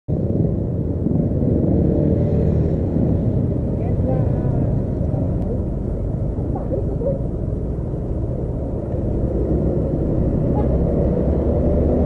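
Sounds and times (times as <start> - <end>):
road traffic rumble: 0.1 - 12.0
faint voices: 6.4 - 7.4.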